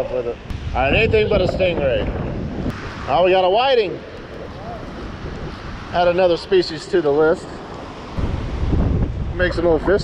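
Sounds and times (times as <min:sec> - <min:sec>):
wind on microphone: 0:00.4 - 0:06.6, 0:08.1 - 0:10.0
small surf waves washing: 0:02.7 - 0:10.0.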